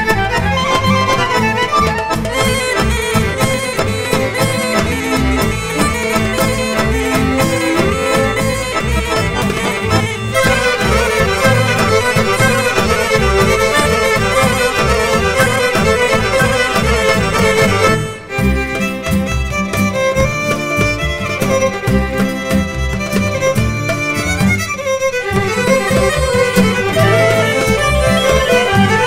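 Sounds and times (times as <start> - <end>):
folk dance music with fiddle: 0.0 - 29.0.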